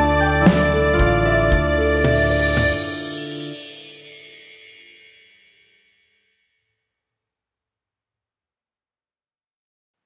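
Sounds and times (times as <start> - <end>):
high tinkling wind chimes: 2.8 - 7.2.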